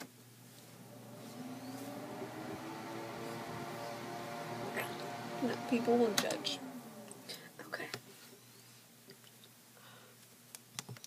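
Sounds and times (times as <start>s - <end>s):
machine hum rising in pitch: 0.8s - 7.6s.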